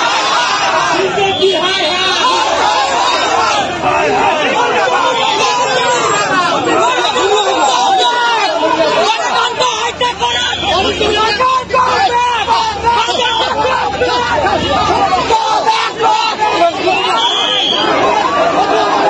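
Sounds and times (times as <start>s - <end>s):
crowd shouting: 0.0s - 19.0s.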